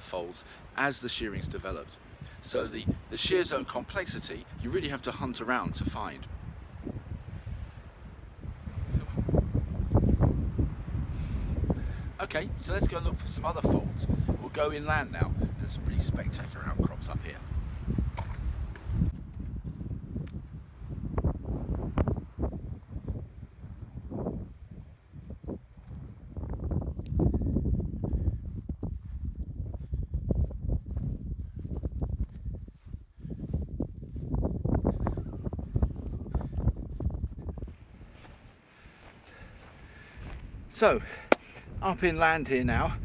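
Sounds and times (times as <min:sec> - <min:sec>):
wind rumbling on microphone: 0:00.0 - 0:43.0
footsteps on rough rocky ground: 0:17.3 - 0:24.2, 0:25.2 - 0:34.8, 0:35.4 - 0:41.8.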